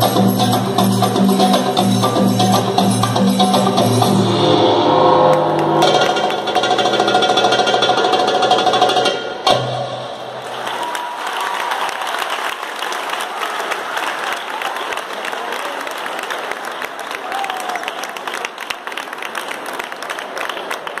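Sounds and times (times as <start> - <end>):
audience applauding: 10.3 - 21.0.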